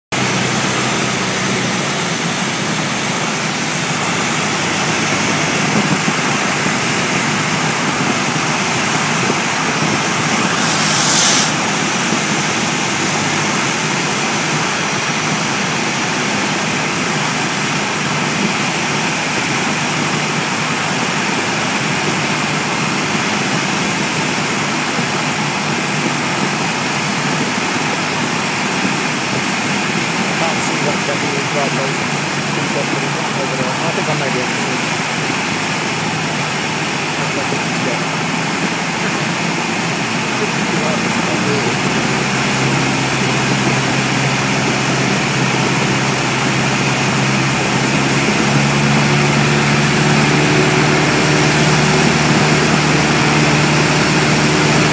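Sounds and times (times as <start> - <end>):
rushing airflow: 0.2 - 23.0, 25.4 - 54.9
light aircraft engine: 0.2 - 54.9.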